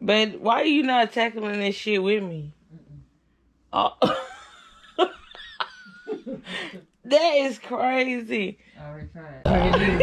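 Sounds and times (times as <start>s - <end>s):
woman laughing: 3.9s - 6.8s, 9.5s - 10.0s.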